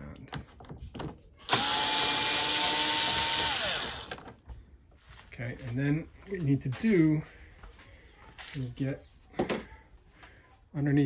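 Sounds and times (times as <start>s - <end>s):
cordless screwdriver motor whine: 1.5s - 4.2s.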